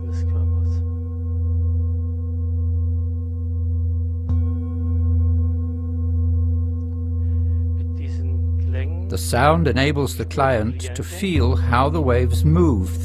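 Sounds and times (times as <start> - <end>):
singing bowl ringing: 0.0 - 13.0.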